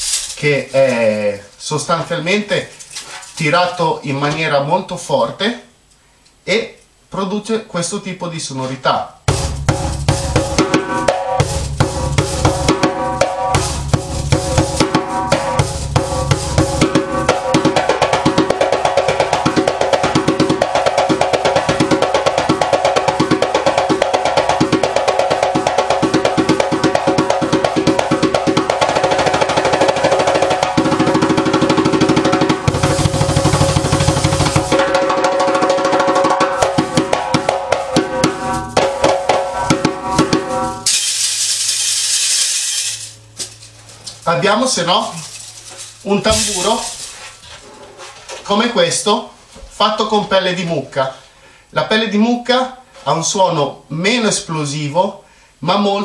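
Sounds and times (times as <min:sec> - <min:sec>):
djembe played with hands: 0:09.3 - 0:40.9.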